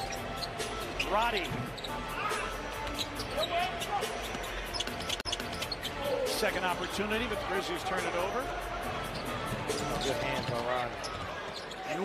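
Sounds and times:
arena music: 0.0s - 11.1s.

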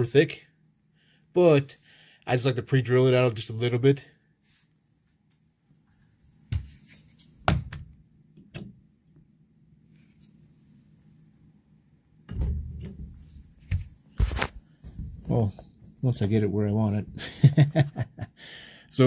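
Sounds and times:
sliding door low rumble: 12.3s - 13.6s.

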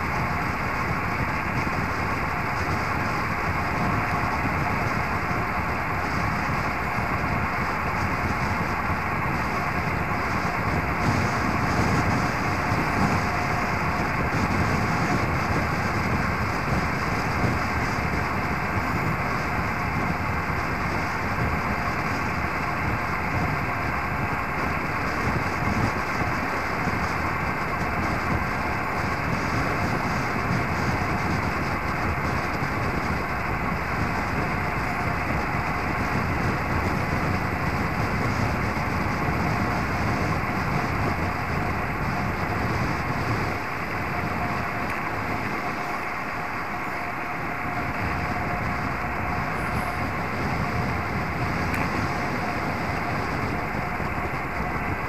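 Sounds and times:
bike tyres humming on asphalt: 0.0s - 55.0s
wind noise on microphone: 0.0s - 55.0s.

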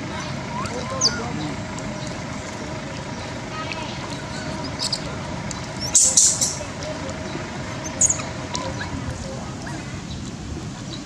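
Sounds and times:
distant traffic rumble: 0.0s - 11.0s
faint distant voices: 0.0s - 11.0s.

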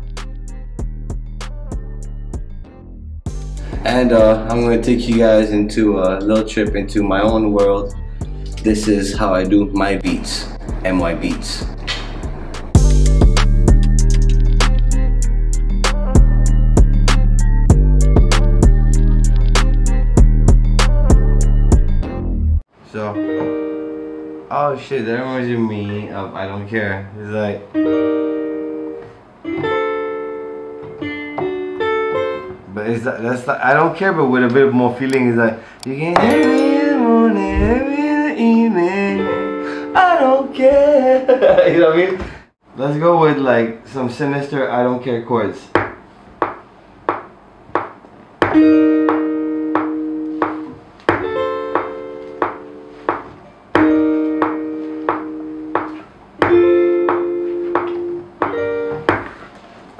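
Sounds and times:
guitar-like keyboard chord: 36.2s - 37.9s, 56.6s - 58.9s
sustained keyboard chords: 36.2s - 37.9s, 48.6s - 59.1s.

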